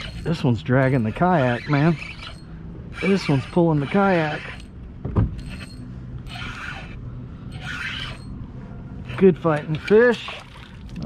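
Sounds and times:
fishing reel gears rasping: 0.0s - 4.8s, 5.4s - 8.4s.

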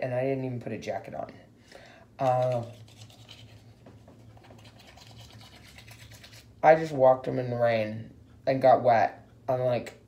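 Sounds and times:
toothbrush scrubbing teeth: 2.2s - 6.6s.

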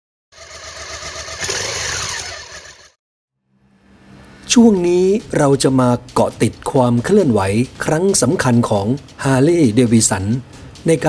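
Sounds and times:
motorcycle engine: 0.3s - 4.5s.

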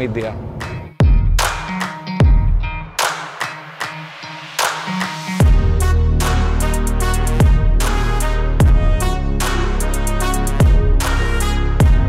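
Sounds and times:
sharp percussive hits: 0.3s - 12.0s.

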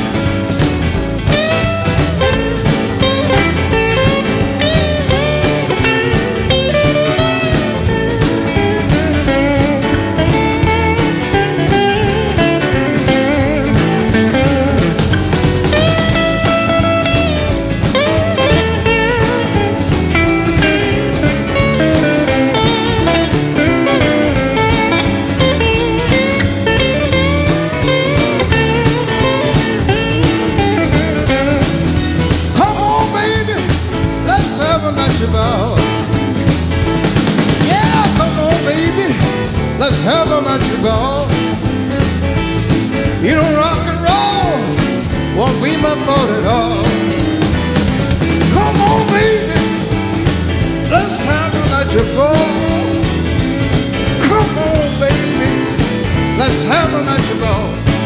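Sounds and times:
bass: 0.0s - 58.0s
drum beat: 0.0s - 58.0s
electric guitar lead: 0.0s - 58.0s.

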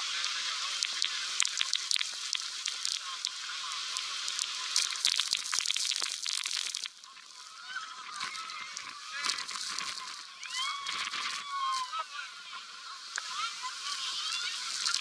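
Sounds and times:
waterfall spray hitting microphone: 0.0s - 7.1s, 13.1s - 15.0s
rushing water: 0.0s - 15.0s
people shrieking and yelling: 10.4s - 12.6s.

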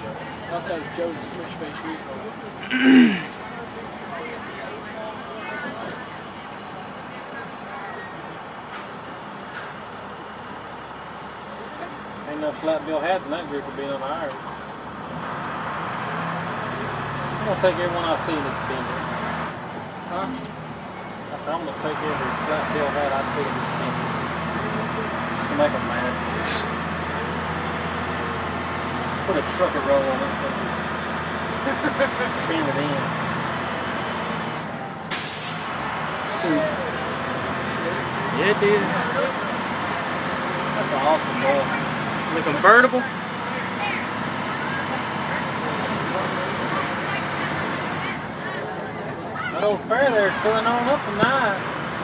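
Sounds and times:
diesel bus engine running: 0.0s - 52.0s
air brake hisses: 11.1s - 11.8s, 26.4s - 26.7s, 35.1s - 35.8s
brief hiss: 35.1s - 35.7s.

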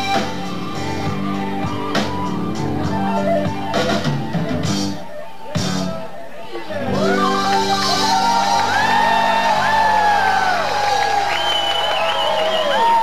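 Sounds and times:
audience whooping and shouting: 0.0s - 13.0s.

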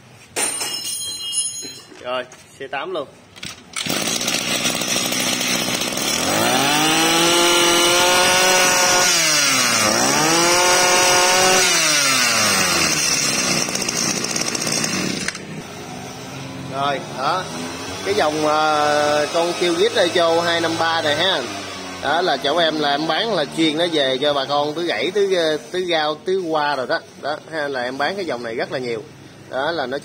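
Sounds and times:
brush cutter engine revving: 3.4s - 26.1s.

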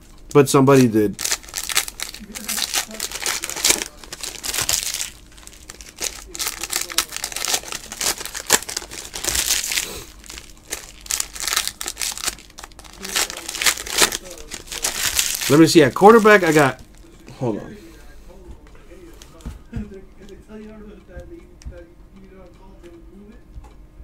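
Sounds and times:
foil wrappers crinkling and tearing: 0.6s - 17.2s.

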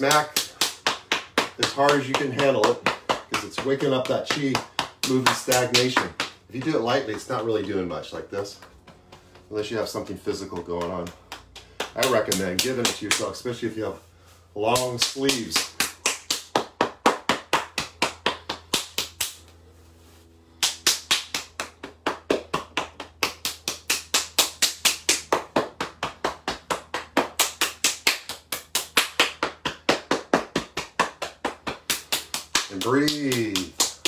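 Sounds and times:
hands slapping arm: 0.0s - 13.4s, 14.7s - 19.5s, 20.6s - 34.0s.

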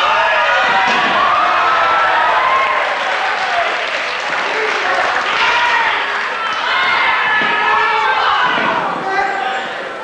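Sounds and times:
crowd clapping: 0.0s - 8.8s
crowd shouting: 0.0s - 10.0s.

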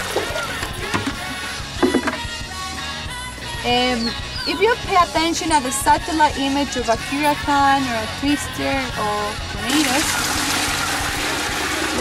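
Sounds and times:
water draining from metal basin: 9.7s - 12.0s.

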